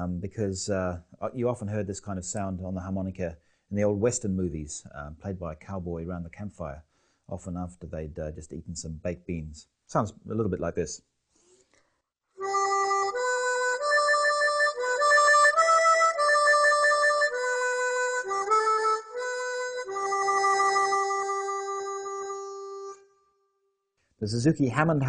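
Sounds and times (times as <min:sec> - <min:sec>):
harmonica melody with wah-wah: 0:12.4 - 0:23.3.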